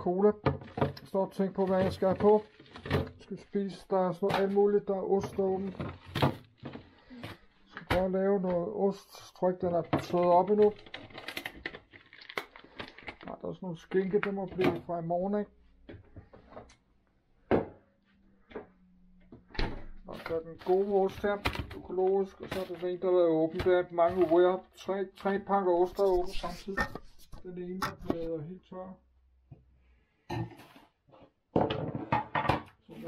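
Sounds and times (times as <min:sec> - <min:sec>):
kitchen items clattering on counter: 0:31.6 - 0:32.8.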